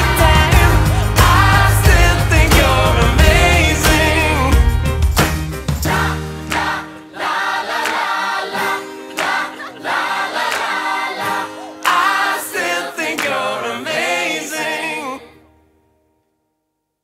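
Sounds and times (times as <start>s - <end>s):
choir singing held lines: 0.0s - 4.7s, 5.8s - 15.5s.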